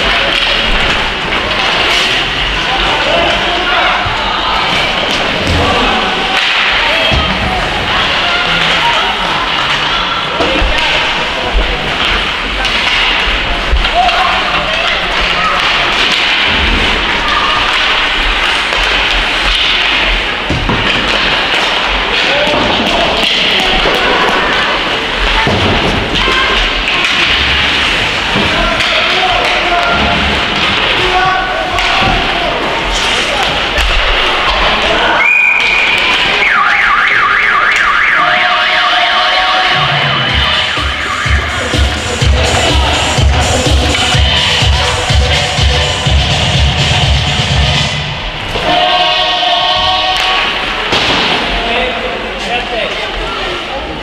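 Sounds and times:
crowd voices echoing in arena: 0.0s - 54.0s
dance music with heavy beat: 39.8s - 48.0s.

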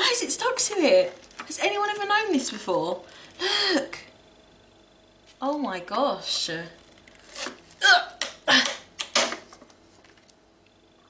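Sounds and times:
woman gasping: 3.1s - 4.0s.

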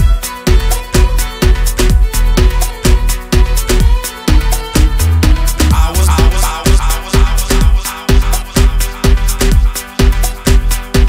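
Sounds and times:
electronic dance music: 0.0s - 11.0s
steady kick drum: 0.0s - 11.0s.

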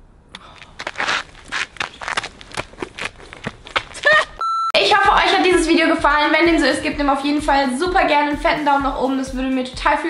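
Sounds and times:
short electronic beep: 4.4s - 4.8s
woman talking: 4.8s - 10.0s.

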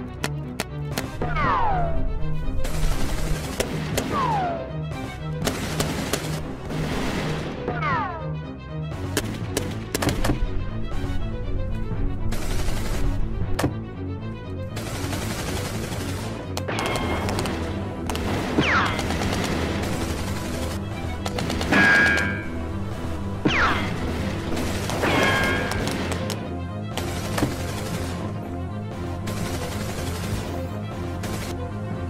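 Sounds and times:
background music: 0.0s - 32.0s
gunfire: 2.6s - 4.6s, 5.4s - 7.6s, 14.8s - 22.6s, 23.5s - 28.3s.

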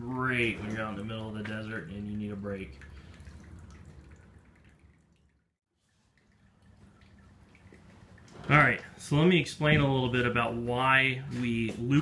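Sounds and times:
water trickling into bucket: 0.0s - 10.7s.

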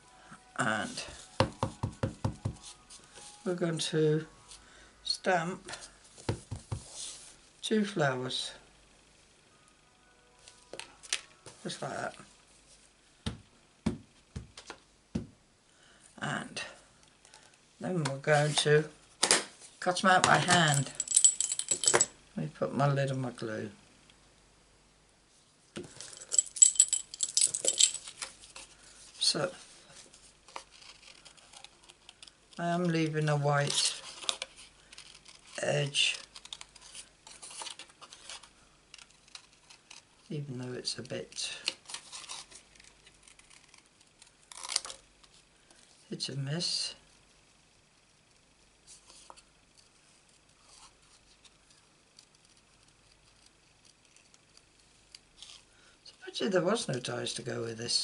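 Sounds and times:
keyring charm jangling: 20.6s - 22.1s, 26.2s - 28.2s
light metallic clinks: 26.2s - 28.1s.

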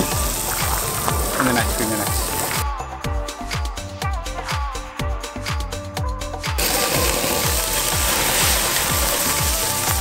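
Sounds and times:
butter sizzling on a grill: 0.0s - 2.6s, 6.6s - 10.0s
music with kick-drum beat: 0.0s - 10.0s.

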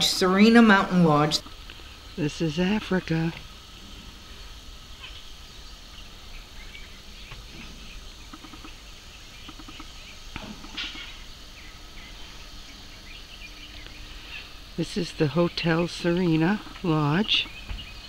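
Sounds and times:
bird chirps: 4.4s - 14.6s, 15.2s - 18.0s.

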